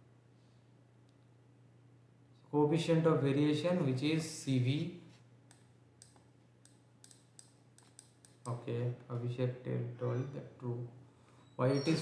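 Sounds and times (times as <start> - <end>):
stylus tapping on pen tablet: 5.5 - 8.6.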